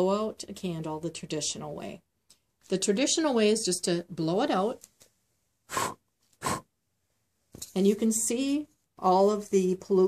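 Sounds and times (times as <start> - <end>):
puffs of breath blowing out candle: 5.7 - 6.7.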